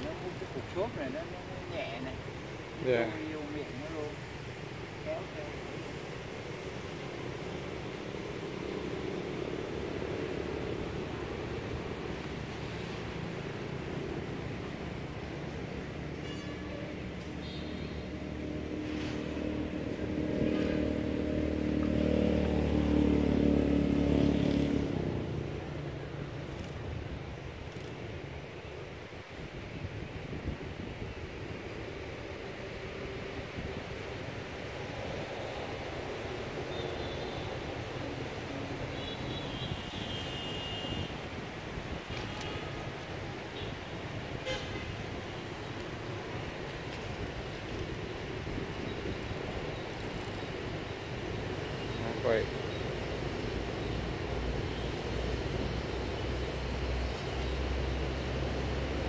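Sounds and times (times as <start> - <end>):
outdoor background noise: 0.0 - 59.0
vehicle engine passing: 18.2 - 25.7.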